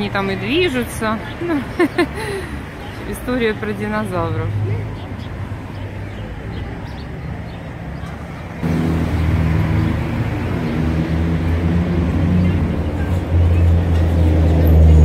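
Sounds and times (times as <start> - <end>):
vehicle engine running: 8.6 - 15.0.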